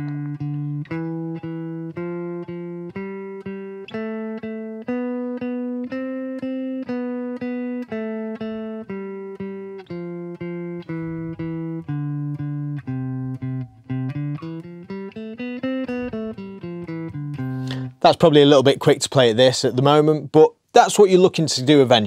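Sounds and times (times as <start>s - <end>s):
electric guitar playing a scale: 0.0s - 18.0s.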